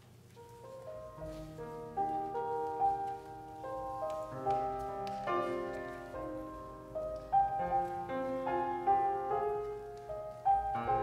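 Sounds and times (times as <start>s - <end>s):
slow hymn-style grand piano: 0.0s - 11.0s.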